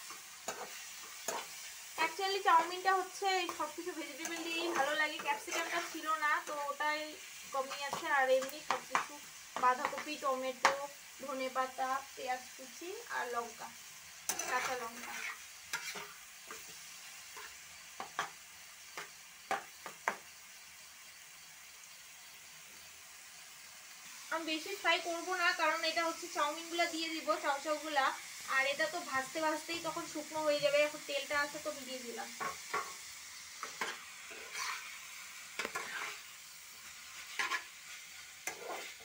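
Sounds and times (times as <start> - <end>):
spatula scraping and knocking pan: 0.0 - 6.7, 7.6 - 10.8, 14.3 - 18.4, 19.0 - 20.2, 32.4 - 39.0
vegetables sizzling in a frying pan: 0.0 - 39.0.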